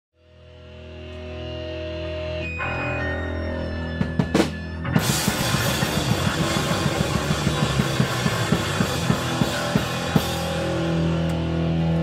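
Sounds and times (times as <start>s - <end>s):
punk band playing live: 0.8s - 12.0s
fast drumming with cymbals: 4.1s - 10.9s.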